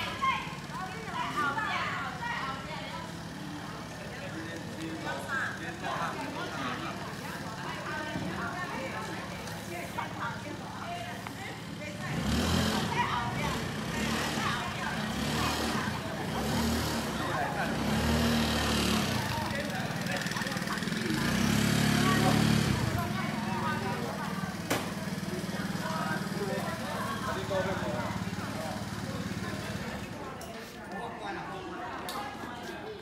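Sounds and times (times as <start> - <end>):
motor scooter engine running: 0.0 - 30.4
people talking: 0.0 - 33.0.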